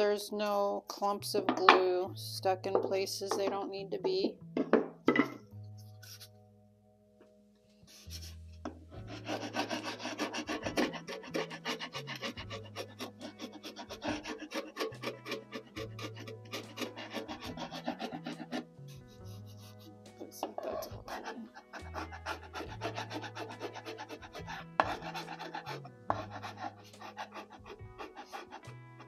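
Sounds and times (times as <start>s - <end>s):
metal scraper scraping wood: 8.1s - 29.0s.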